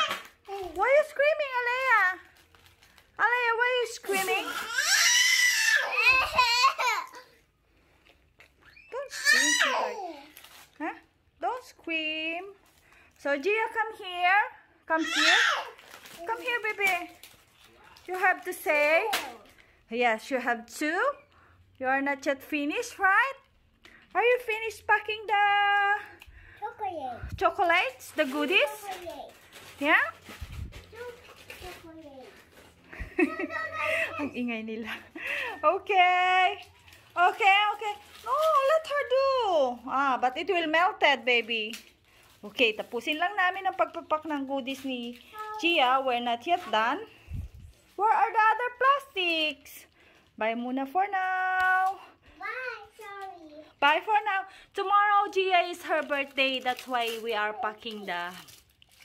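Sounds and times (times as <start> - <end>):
small child whining: 4.4 - 6.9, 9.1 - 10.4
baby squealing and screaming: 4.4 - 7.0, 8.6 - 10.2, 15.0 - 15.8.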